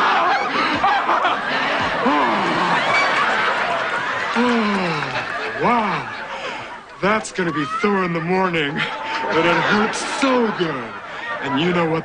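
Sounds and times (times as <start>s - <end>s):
audience laughing: 0.0s - 7.5s, 8.1s - 12.0s.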